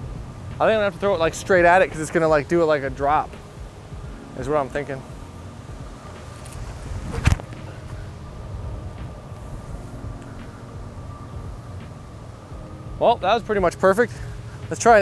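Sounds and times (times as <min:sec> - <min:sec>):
truck traffic rumble: 0:00.0 - 0:15.0
wind buffeting microphone: 0:00.0 - 0:15.0
sharp thump: 0:06.4 - 0:07.7.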